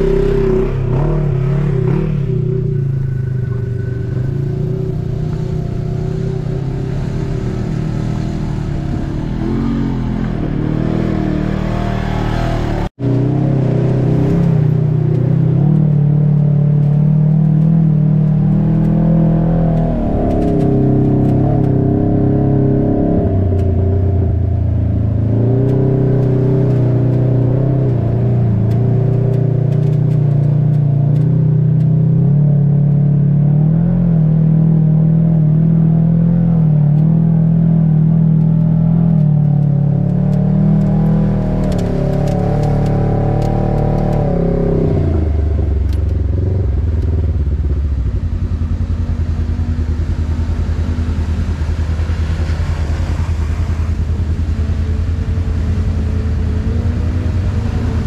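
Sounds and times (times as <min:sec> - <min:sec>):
utility vehicle engine revving: 0:00.0 - 0:58.0.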